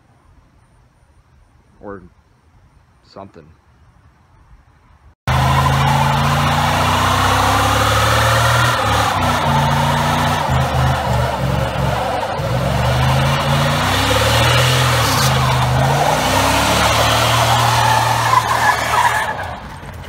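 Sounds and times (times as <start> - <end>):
engine revving hard: 5.3 - 19.8
tyre screeching: 5.3 - 20.0.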